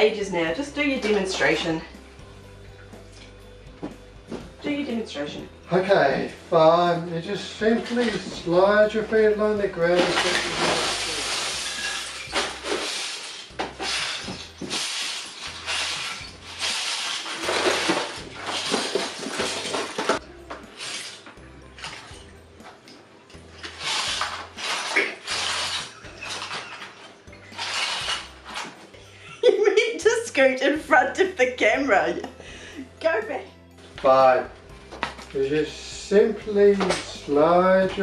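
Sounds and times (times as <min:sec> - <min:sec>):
plastic bricks clattering: 0:10.0 - 0:20.2, 0:27.6 - 0:28.7.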